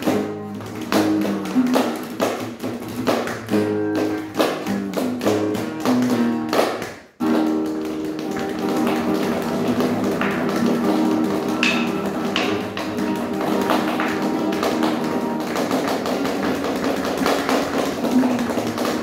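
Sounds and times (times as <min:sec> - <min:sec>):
acoustic guitar strumming: 0:00.0 - 0:06.6, 0:07.2 - 0:19.0
cajon tapping: 0:00.0 - 0:19.0.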